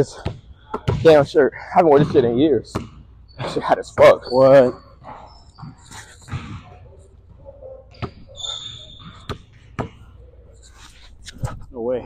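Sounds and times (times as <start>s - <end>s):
sneaker squeaks: 1.8s - 11.6s.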